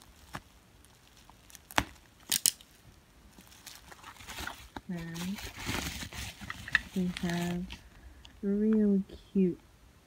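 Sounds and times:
plastic crinkling: 0.0 - 8.0
scissors snipping plastic: 1.1 - 2.7.

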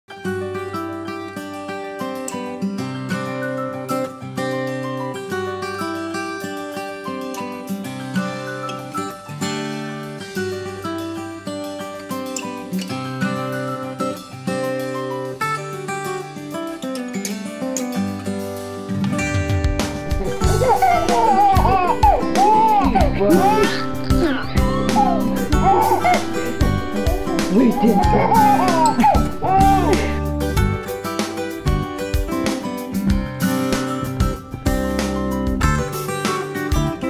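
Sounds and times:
acoustic guitar music: 0.1 - 37.0.

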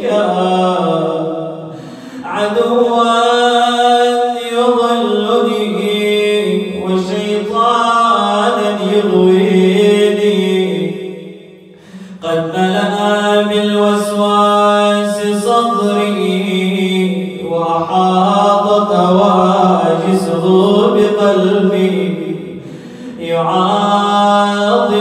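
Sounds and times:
man chanting: 0.0 - 25.0
breath: 1.7 - 2.3, 11.7 - 12.2, 22.6 - 23.2.

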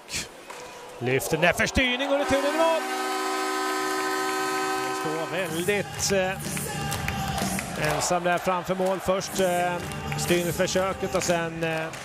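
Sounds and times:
arena goal horn: 2.0 - 5.8.

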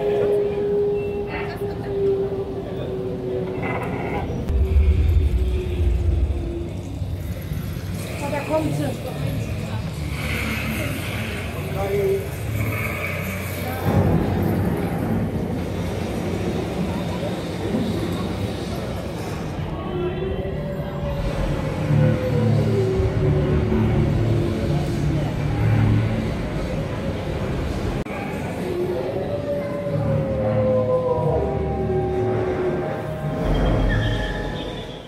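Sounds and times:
ambient music: 0.0 - 35.0
chatter of visitors: 0.0 - 35.0
deep rumble: 3.5 - 11.7
held low note: 4.4 - 8.4.

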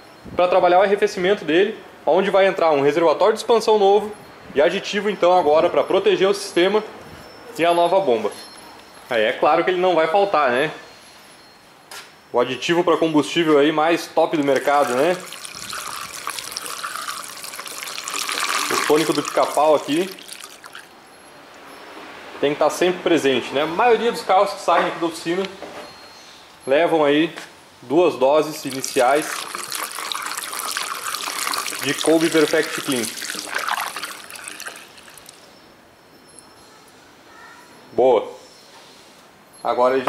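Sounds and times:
liquid pouring into a funnel: 14.3 - 20.9, 28.5 - 35.4.

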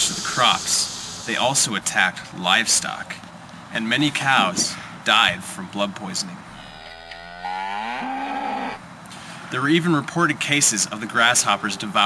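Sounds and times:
cow mooing: 6.5 - 8.8.

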